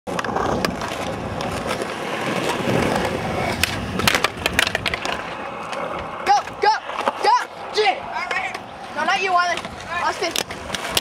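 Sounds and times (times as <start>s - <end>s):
skateboard clicks and clacks: 0.1s - 11.0s
skateboard wheels rolling on asphalt: 0.1s - 11.0s.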